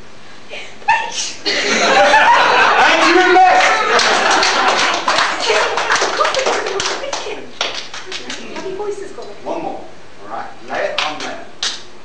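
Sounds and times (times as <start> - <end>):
voices: 0.5 - 11.5
audience applause: 2.7 - 8.4.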